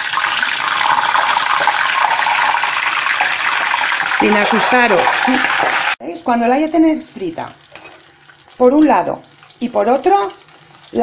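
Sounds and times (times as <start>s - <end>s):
deep-frying sizzle and crackle: 0.0s - 11.0s.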